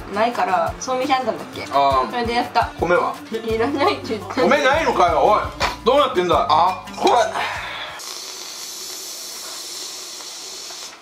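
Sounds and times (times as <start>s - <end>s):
steady high-pitched hiss: 7.9s - 11.0s.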